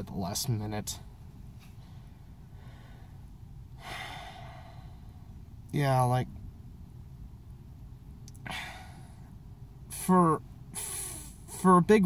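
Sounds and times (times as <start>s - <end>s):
faint low rumble: 0.0s - 12.0s
man breathing: 1.6s - 5.6s, 8.4s - 9.4s, 10.7s - 11.6s.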